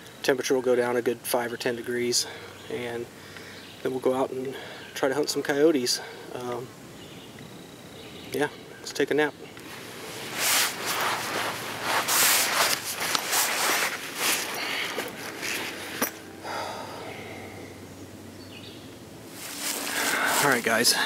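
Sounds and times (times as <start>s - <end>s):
hammock fabric rustling: 9.6s - 16.8s, 19.2s - 21.0s.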